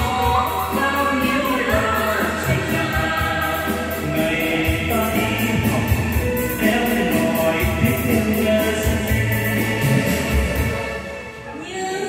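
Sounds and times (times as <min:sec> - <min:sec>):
instrumental accompaniment with beat: 0:00.0 - 0:11.5
man and woman singing duet: 0:00.0 - 0:12.0.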